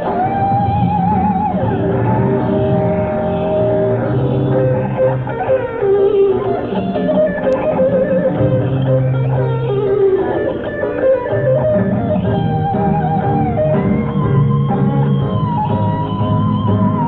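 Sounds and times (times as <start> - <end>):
electric guitar vibrato and slide: 0.0 - 17.0
rock band playing: 0.0 - 17.0.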